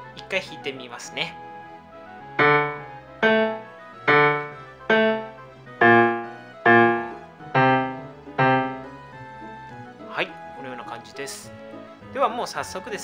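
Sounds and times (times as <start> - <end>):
digital piano single notes: 2.4 - 9.2.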